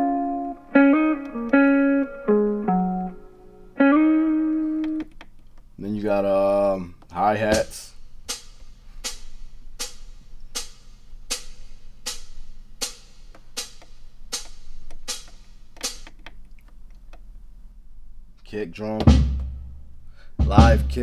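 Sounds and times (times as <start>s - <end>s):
hi-hat cymbal strikes: 7.6s - 16.0s.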